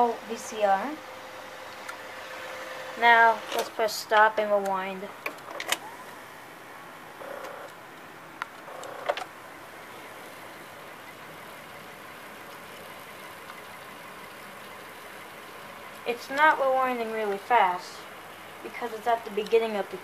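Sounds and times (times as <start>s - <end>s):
tape rewinding whir: 1.6s - 6.4s, 7.1s - 7.8s, 8.6s - 17.8s.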